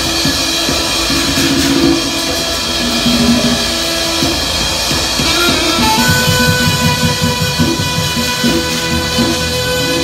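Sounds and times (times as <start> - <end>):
tropical beat with pulsing bass: 0.0 - 10.0
saxophone long note: 0.4 - 10.0.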